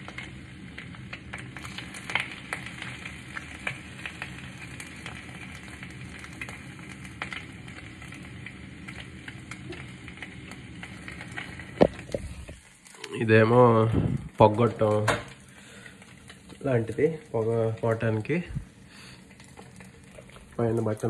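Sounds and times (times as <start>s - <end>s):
egg sizzling in oil: 0.0s - 21.0s.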